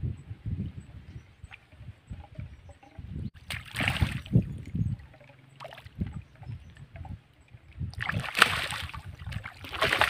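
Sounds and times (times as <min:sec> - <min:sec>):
wind rumble on microphone: 0:00.0 - 0:10.0
water sloshing and splashing: 0:01.4 - 0:10.0.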